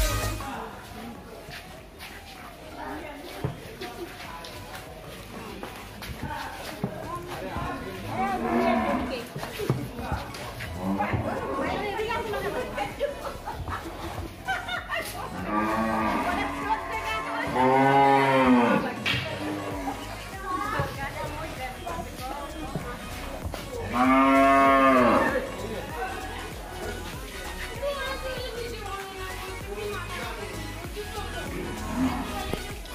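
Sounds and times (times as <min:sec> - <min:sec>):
cows mooing: 0:08.1 - 0:09.2, 0:15.3 - 0:19.9, 0:23.9 - 0:25.5, 0:31.6 - 0:32.5.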